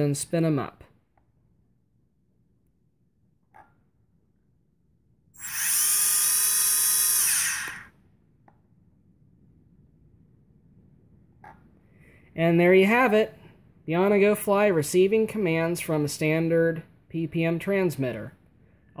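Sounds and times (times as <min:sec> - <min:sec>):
drone motors whining: 0:05.4 - 0:07.9.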